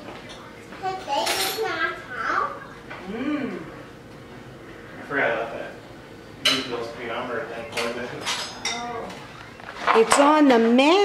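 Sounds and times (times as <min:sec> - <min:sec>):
cutlery clinking on plates: 0:01.2 - 0:01.6, 0:07.6 - 0:08.9.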